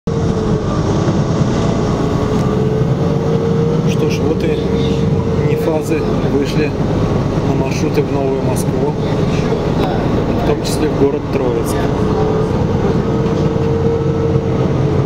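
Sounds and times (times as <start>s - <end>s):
bus engine and road noise: 0.1s - 15.0s
steady whine: 0.1s - 15.0s
person speaking: 3.8s - 13.2s.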